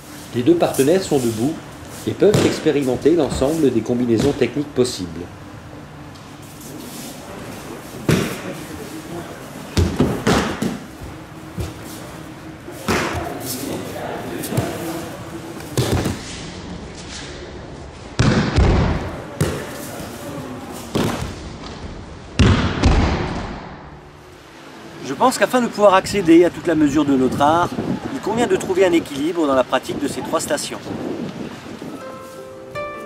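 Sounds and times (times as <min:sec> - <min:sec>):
bodies thudding on mats: 0:15.7 - 0:16.2.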